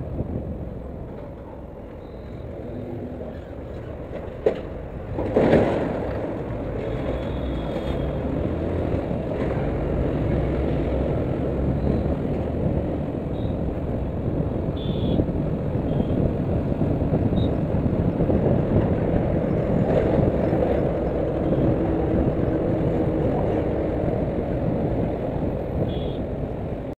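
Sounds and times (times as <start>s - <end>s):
wind rush: 0.0s - 27.0s.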